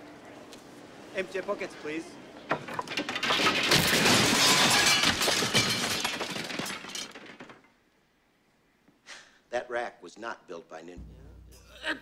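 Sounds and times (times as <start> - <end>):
wooden weapons clattering onto floor: 2.5 - 7.7.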